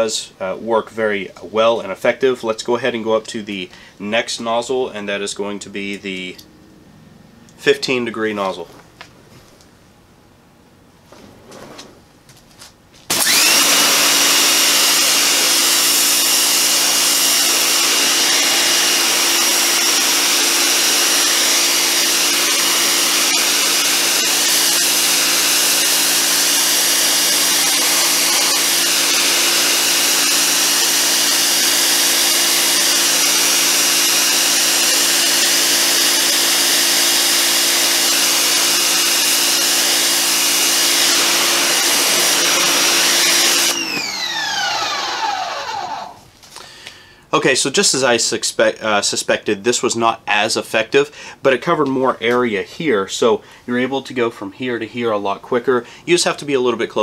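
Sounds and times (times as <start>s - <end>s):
pressure washer motor whine: 13.1s - 46.2s.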